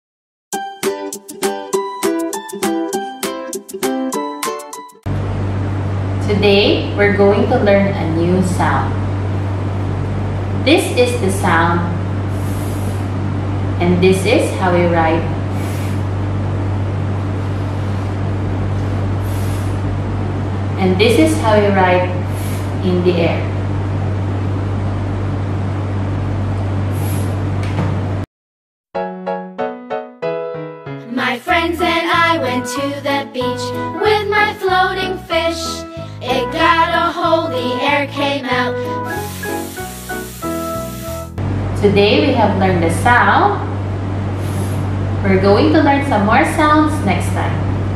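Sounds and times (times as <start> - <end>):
steady low hum: 5.1 - 28.3, 31.2 - 47.9
woman speaking: 6.2 - 9.0, 10.7 - 12.0, 13.8 - 15.4, 20.8 - 23.6, 41.8 - 43.7, 45.2 - 47.7
long ffff hiss: 12.2 - 13.3, 15.5 - 16.2, 19.1 - 20.0, 22.2 - 22.8, 26.9 - 27.4, 37.1 - 41.4, 44.3 - 44.9
short soft high hiss: 12.3 - 13.1, 15.5 - 16.1, 26.9 - 27.4, 39.0 - 41.4
children's song: 31.0 - 39.6
background hiss: 39.0 - 41.4.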